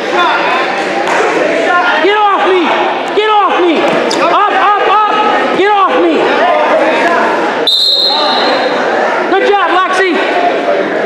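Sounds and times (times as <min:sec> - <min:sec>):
crowd voices in a gym: 0:00.0 - 0:11.0
referee's whistle blast: 0:07.7 - 0:08.7.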